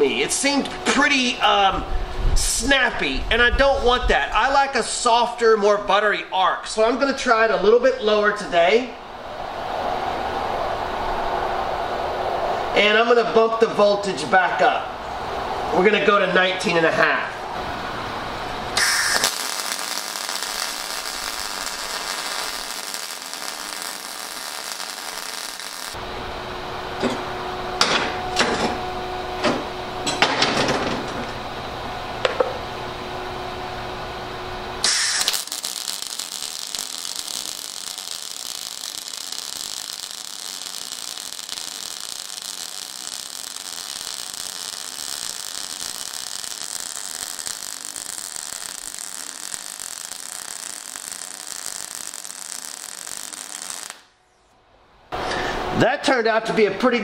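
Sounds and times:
welding arc crackling: 18.7s - 26.0s, 34.8s - 54.2s
low hum with sharp pops: 34.8s - 54.6s.

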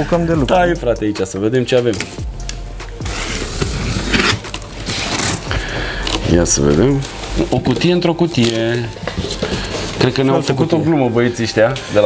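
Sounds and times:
box cutter slitting tape: 2.0s - 6.3s.

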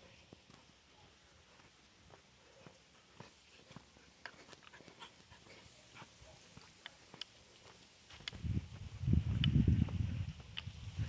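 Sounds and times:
dog footsteps on dirt road: 0.0s - 11.0s.

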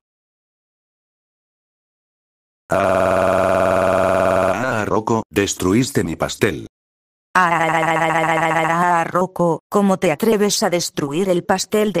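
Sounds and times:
loud buzzy tone: 2.7s - 4.6s.

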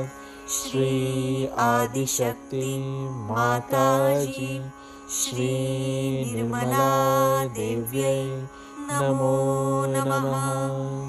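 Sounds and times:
person chanting a mantra: 0.0s - 11.0s.

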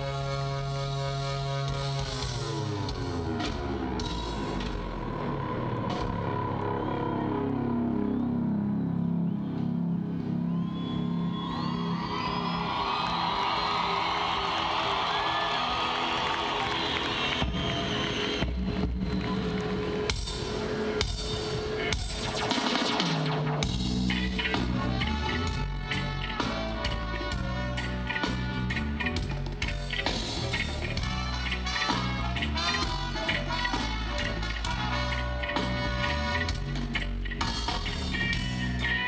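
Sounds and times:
live band playing: 0.0s - 7.2s, 16.0s - 39.0s
low pitched bass line: 0.0s - 10.6s, 23.5s - 39.0s
crowd cheering and whistling: 5.2s - 23.1s
keyboard chords: 19.3s - 39.0s.

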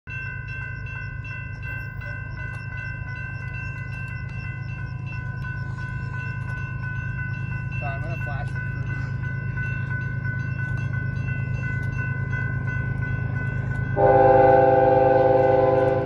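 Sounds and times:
railroad crossing bell ringing: 0.1s - 16.0s.

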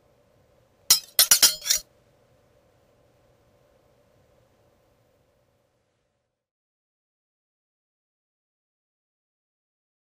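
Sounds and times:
faint steady hum: 0.0s - 6.5s
sharp ringing clinks: 0.9s - 1.8s.

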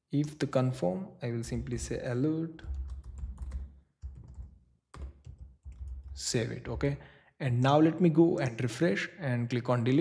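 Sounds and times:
keyboard typing: 2.6s - 6.2s.

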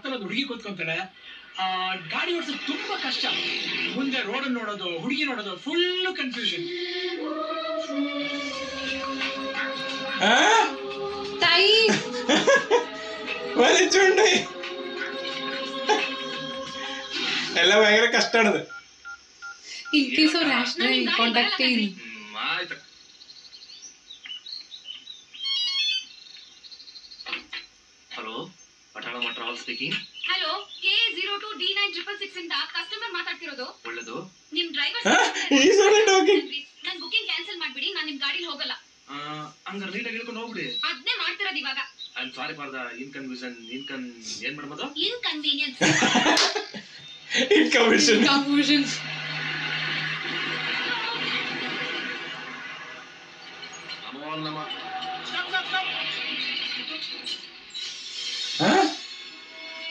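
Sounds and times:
birds chirping: 19.8s - 31.6s, 40.3s - 44.8s, 45.5s - 59.1s.

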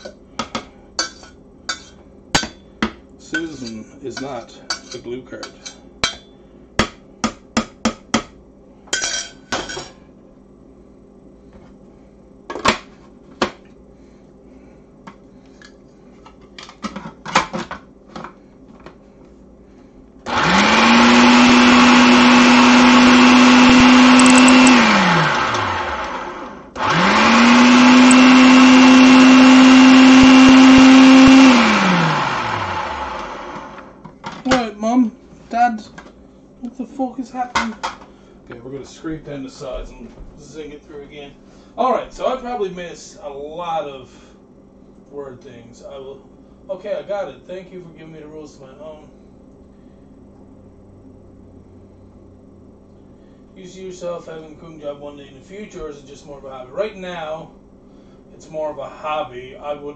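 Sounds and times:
food processor motor whirring: 20.2s - 34.0s.

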